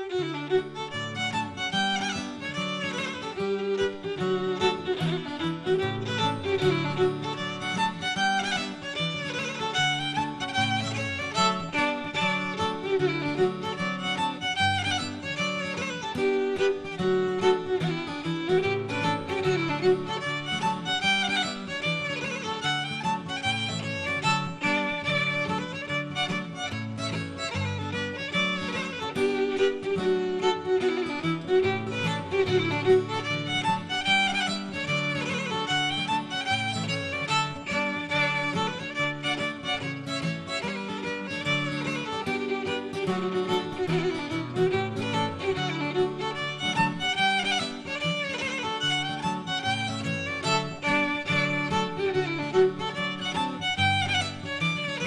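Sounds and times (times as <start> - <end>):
folk fiddle playing hornpipe: 0.0 - 55.0.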